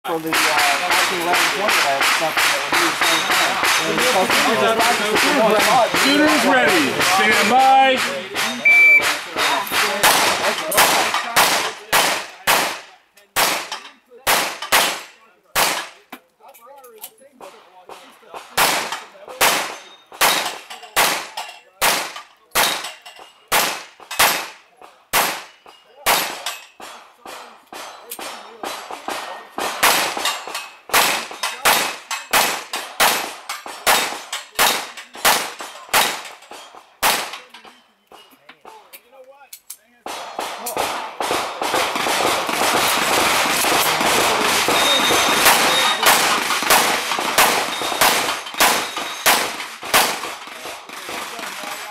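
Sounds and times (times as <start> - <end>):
pistol shots hitting steel plates: 0.2 - 12.8, 13.4 - 16.0, 18.4 - 38.3, 40.1 - 51.9.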